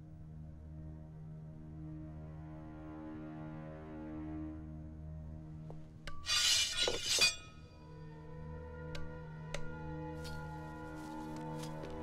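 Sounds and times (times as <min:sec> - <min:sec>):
soft background music: 0:00.0 - 0:12.0
glass shattering: 0:06.3 - 0:07.5.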